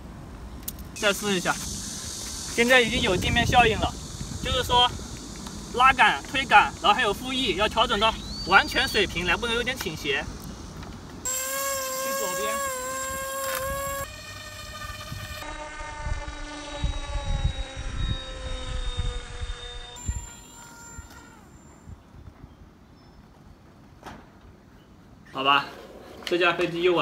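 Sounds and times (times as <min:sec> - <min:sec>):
electric motor and propeller whine: 0:00.9 - 0:22.0.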